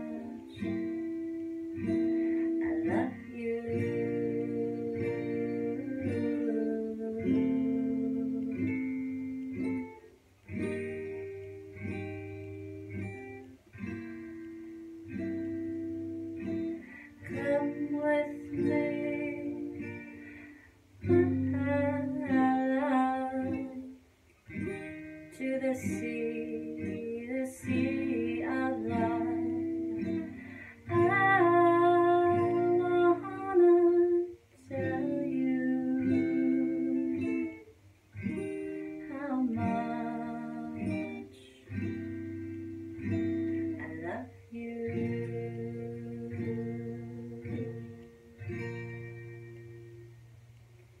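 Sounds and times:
woman singing: 0.0 - 9.5, 16.7 - 20.2, 21.0 - 24.0, 24.6 - 42.3, 43.0 - 48.2
acoustic guitar strumming: 0.0 - 51.0.

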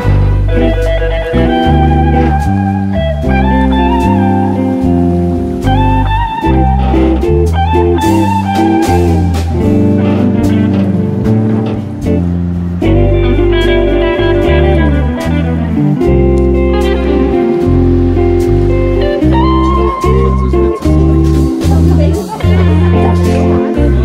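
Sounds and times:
instrumental guitar music: 0.0 - 24.0
sustained low notes: 0.0 - 24.0.

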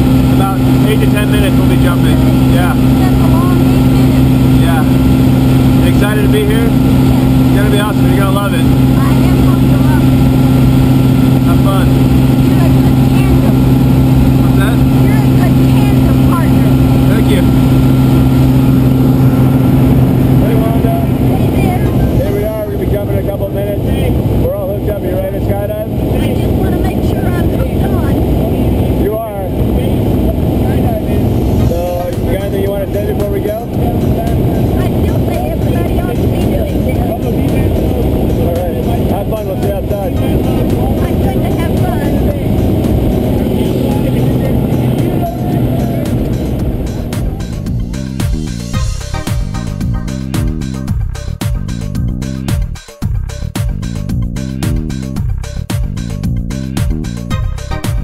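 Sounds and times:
wind noise: 0.0 - 49.7
voices: 0.0 - 50.9
propeller engine droning: 0.0 - 58.0.

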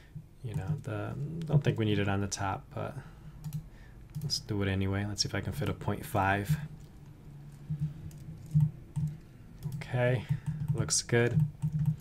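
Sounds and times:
low steady hum: 0.0 - 12.0
keyboard keystrokes: 7.8 - 12.0.

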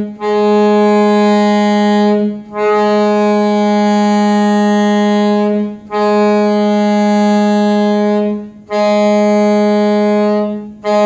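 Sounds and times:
soprano saxophone long low note: 0.0 - 11.0.

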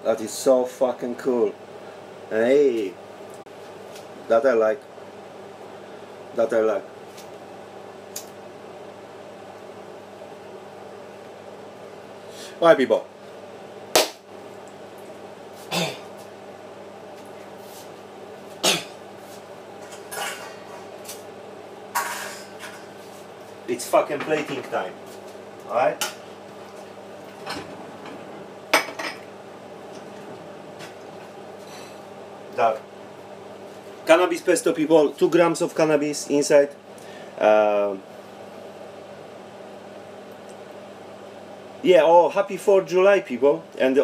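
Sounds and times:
low mechanical hum: 0.0 - 44.0.

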